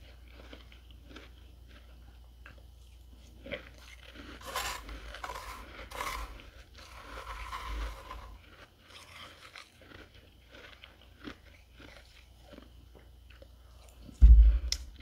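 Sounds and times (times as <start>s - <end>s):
frost crunching as chewed: 0.0s - 14.2s.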